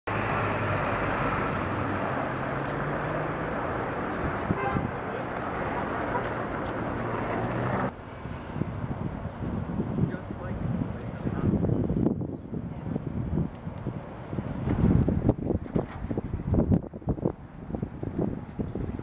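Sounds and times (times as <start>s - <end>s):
quiet outdoor sound: 0.1s - 18.6s
street traffic engine hum: 0.1s - 19.0s.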